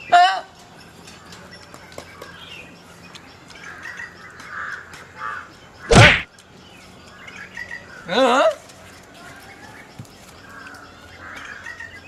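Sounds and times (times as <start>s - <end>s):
crow cawing: 3.7s - 5.5s.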